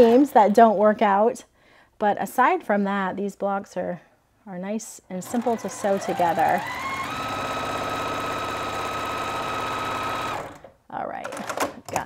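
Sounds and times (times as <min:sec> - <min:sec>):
sewing machine stitching: 0:05.1 - 0:11.8.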